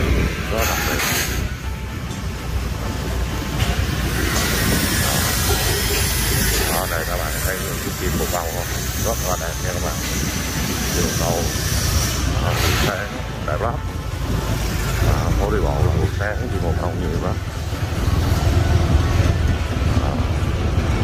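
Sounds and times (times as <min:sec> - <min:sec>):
steady rushing street noise: 0:00.0 - 0:21.0.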